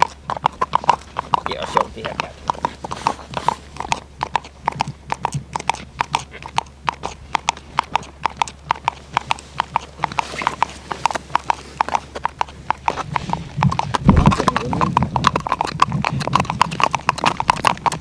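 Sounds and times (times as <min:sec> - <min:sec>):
hooves clicking on ice: 0:00.0 - 0:18.0
low rumble: 0:13.0 - 0:16.6.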